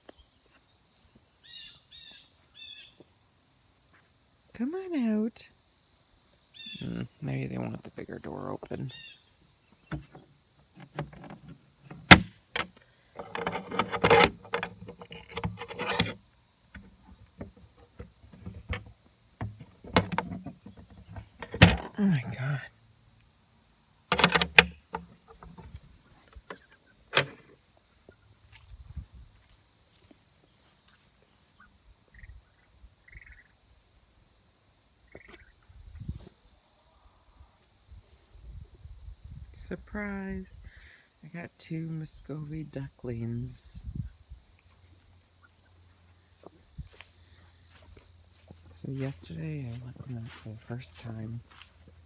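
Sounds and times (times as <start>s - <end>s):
latch rattling and scraping: 9.9s - 16.2s, 16.8s - 22.0s, 24.1s - 25.8s, 26.4s - 27.6s
wooden door clicks and knocks: 12.0s - 14.8s, 24.1s - 25.0s
ducklings chirping: 31.6s - 33.5s.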